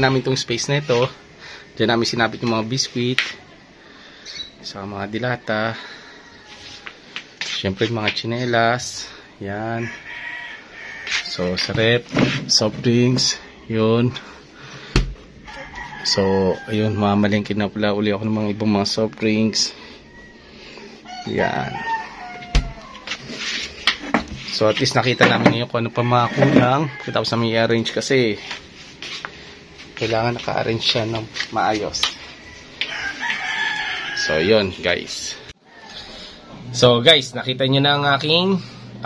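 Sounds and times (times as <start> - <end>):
faint rooster crowing: 5.1 - 11.8, 13.1 - 28.6, 30.0 - 36.8.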